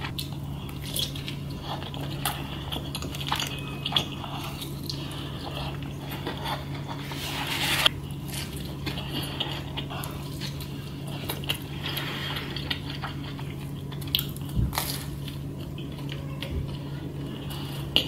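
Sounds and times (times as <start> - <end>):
steady low hum: 0.0 - 18.0
biting and chewing: 7.8 - 18.0.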